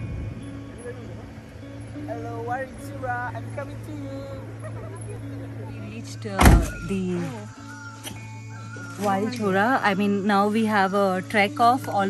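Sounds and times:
loud thump: 6.4s - 6.8s.

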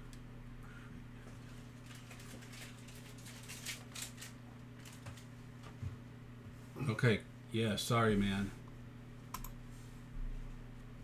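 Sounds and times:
steady low hum: 0.0s - 11.0s
trading cards flicking and rustling: 1.6s - 5.8s.

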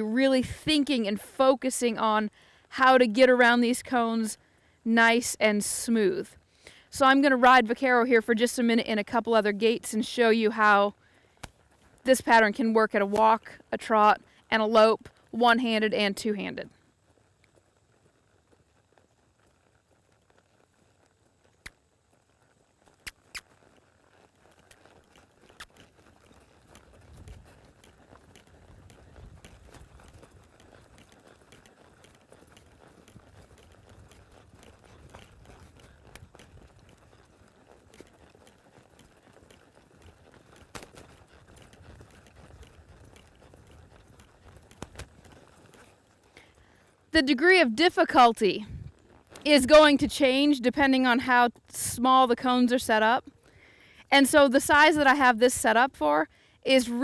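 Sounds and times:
horse hoofbeats on soft sand: 0.0s - 57.0s
sharp clicks: 21.6s - 21.8s, 22.9s - 23.7s, 25.4s - 25.9s, 44.2s - 45.1s.

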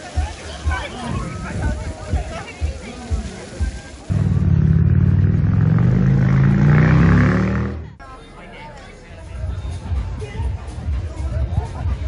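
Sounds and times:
motor vehicle engine running: 4.1s - 8.0s.

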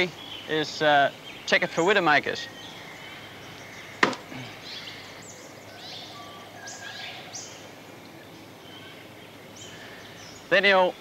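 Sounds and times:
birds whistling and chirping: 0.0s - 11.0s
steady low hiss: 0.0s - 11.0s.

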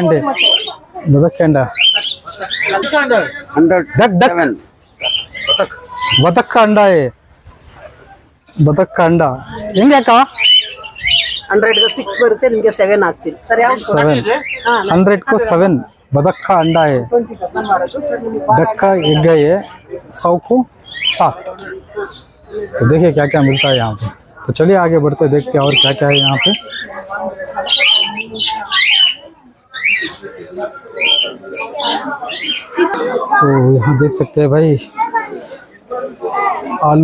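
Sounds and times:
bird squawking: 0.0s - 0.8s, 1.7s - 3.4s, 4.9s - 6.6s, 9.7s - 12.4s, 18.6s - 19.3s, 25.4s - 33.6s.

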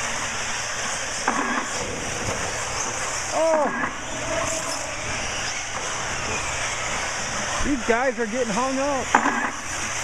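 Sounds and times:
faint high motor whines: 0.0s - 10.0s
rc cars racing: 0.0s - 10.0s.

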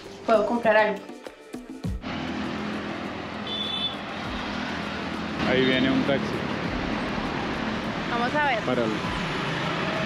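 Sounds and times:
cars and motorcycles passing: 1.9s - 10.0s.

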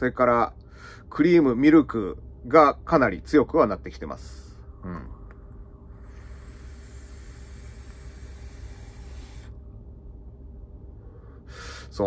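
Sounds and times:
electronic cigarette draw hiss: 5.9s - 9.6s.

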